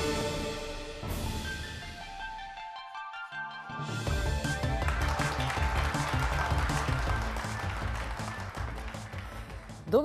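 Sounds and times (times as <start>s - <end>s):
theme music with driving bass: 0.0s - 10.0s.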